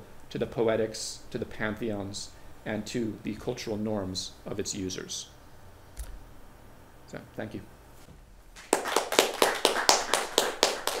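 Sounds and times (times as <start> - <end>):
audience clapping: 8.6 - 11.0.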